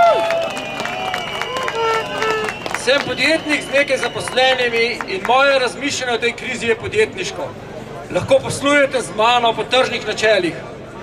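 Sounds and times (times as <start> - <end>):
scattered crowd voices: 0.0 - 11.0.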